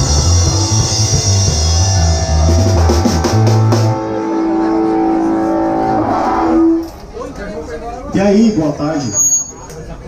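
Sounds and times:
electric guitar notes ringing: 0:00.0 - 0:07.0.

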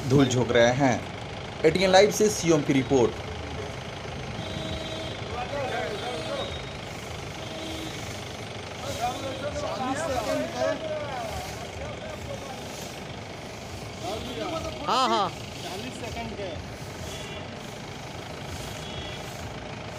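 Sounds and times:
people talking: 0:00.0 - 0:03.2, 0:05.2 - 0:06.7, 0:08.8 - 0:13.1, 0:13.9 - 0:17.7
vehicle engine hum: 0:00.0 - 0:19.9.

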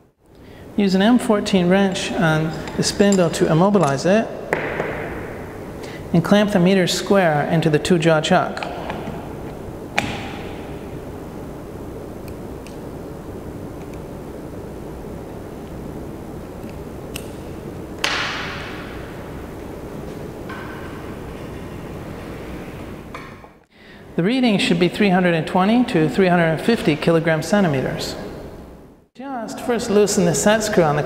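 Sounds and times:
background hiss: 0:00.0 - 0:31.0.

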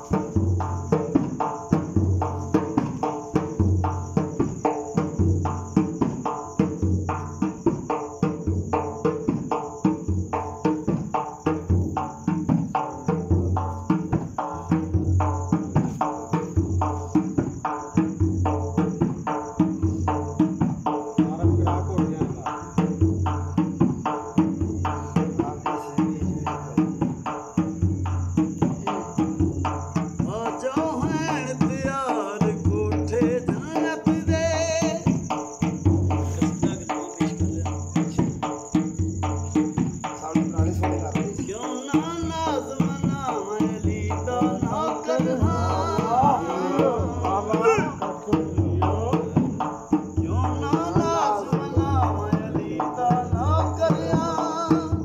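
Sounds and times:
barrel drum beaten: 0:00.0 - 0:55.0
crickets chirring: 0:00.0 - 0:55.0
person chanting: 0:28.6 - 0:29.6, 0:30.2 - 0:35.1, 0:40.7 - 0:55.0.

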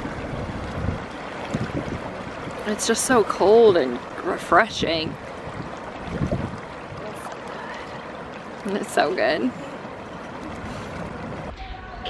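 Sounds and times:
waves lapping on shore: 0:00.0 - 0:12.0.

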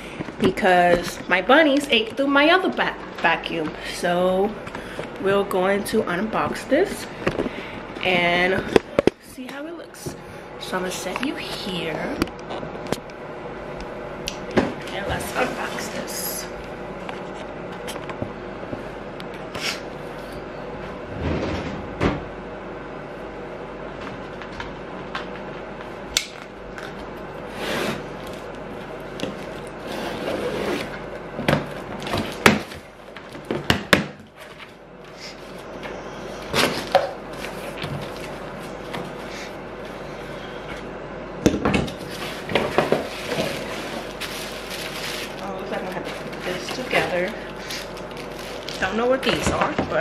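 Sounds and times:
faint steady hum: 0:00.0 - 0:50.0.

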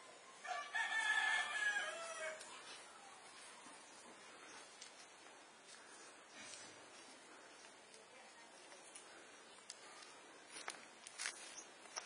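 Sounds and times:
rooster crowing: 0:00.4 - 0:02.5.

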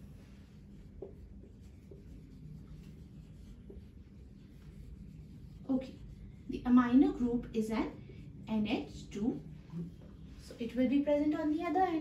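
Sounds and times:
marker writing on whiteboard: 0:00.0 - 0:07.5.

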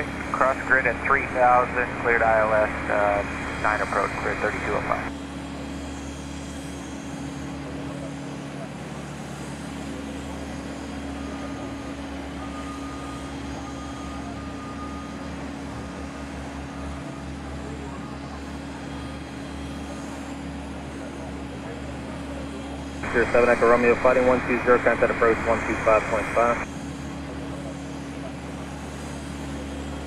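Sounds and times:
low hum: 0:00.0 - 0:05.1, 0:23.0 - 0:26.7
jet engines idling: 0:00.0 - 0:30.0
faint thin whine: 0:23.0 - 0:26.7.

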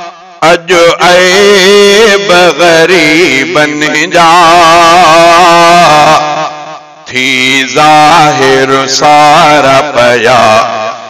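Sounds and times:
man singing a long note: 0:00.0 - 0:11.0.

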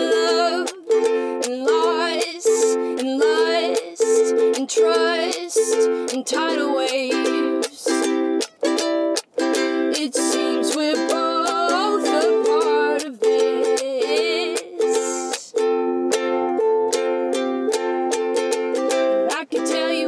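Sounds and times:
person singing wordless melody: 0:00.0 - 0:08.3, 0:09.6 - 0:15.8, 0:19.2 - 0:20.0
ukulele strumming: 0:00.0 - 0:20.0.

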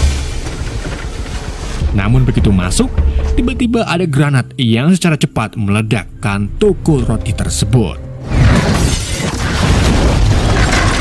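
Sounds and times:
grenade explosion blast: 0:00.0 - 0:02.2, 0:08.2 - 0:11.0
low rumble: 0:00.0 - 0:03.8
music: 0:01.6 - 0:10.0
glass shattering: 0:08.2 - 0:11.0.

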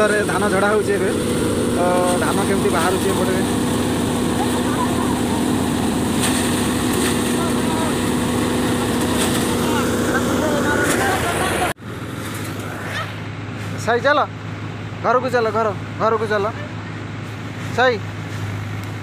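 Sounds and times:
threshing machine drone: 0:00.0 - 0:19.0.

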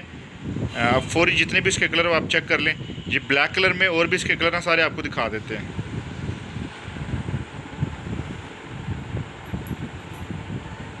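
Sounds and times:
wind buffeting microphone: 0:00.0 - 0:03.1, 0:04.9 - 0:11.0.

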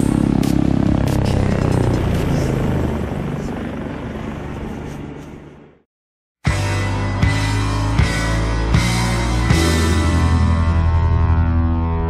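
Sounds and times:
helicopter rotor and engine: 0:00.0 - 0:05.8
background music: 0:06.5 - 0:12.0.

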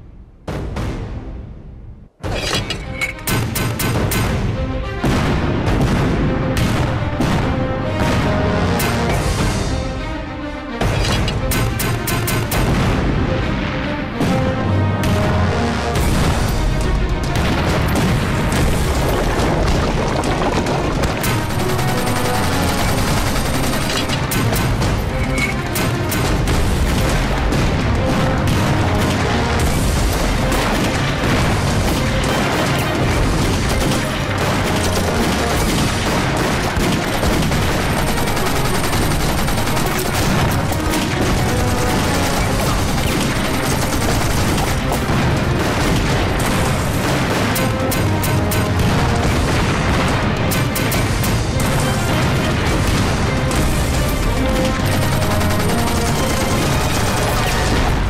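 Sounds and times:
dramatic film music: 0:00.0 - 0:58.0
gunfire: 0:02.2 - 0:09.6, 0:10.8 - 0:13.2, 0:16.0 - 0:58.0
explosions: 0:03.4 - 0:09.7, 0:12.4 - 0:38.3, 0:39.2 - 0:58.0.

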